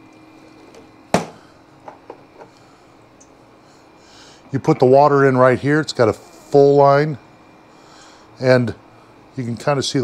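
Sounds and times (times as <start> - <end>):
ice maker humming: 0.0 - 10.0.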